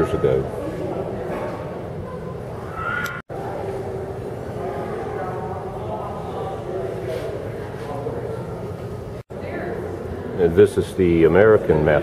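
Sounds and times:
faint background voices: 0:00.0 - 0:11.6.

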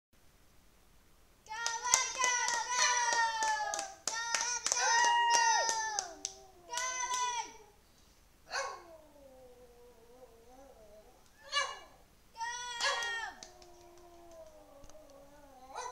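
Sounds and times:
sharp clicks or claps: 0:01.6 - 0:07.3, 0:12.8 - 0:15.1
dog howling: 0:08.5 - 0:12.0, 0:12.6 - 0:15.9.

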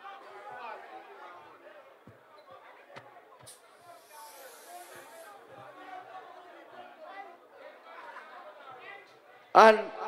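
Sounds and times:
background chatter of people: 0:00.0 - 0:10.0.

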